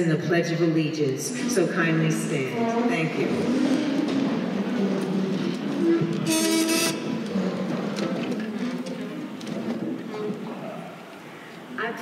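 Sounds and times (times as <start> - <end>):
chair scraping wooden floor: 3.5 - 10.6.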